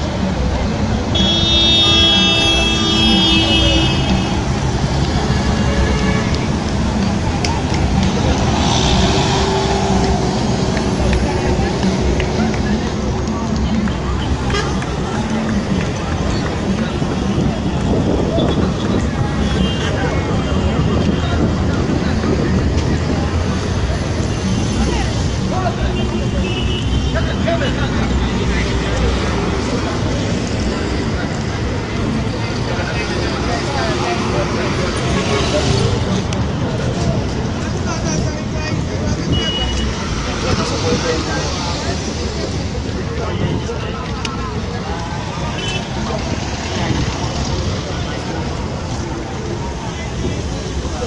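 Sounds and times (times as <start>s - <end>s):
road traffic passing: 0.0s - 51.0s
vehicle engines and tyre noise: 0.0s - 51.0s
voices: 0.0s - 51.0s.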